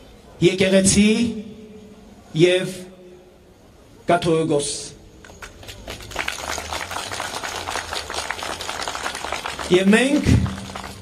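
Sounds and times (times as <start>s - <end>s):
crowd applauding: 5.3s - 11.0s.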